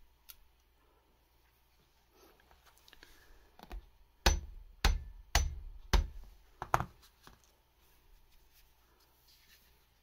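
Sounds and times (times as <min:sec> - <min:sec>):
hammer tapping on metal: 0:04.2 - 0:06.2.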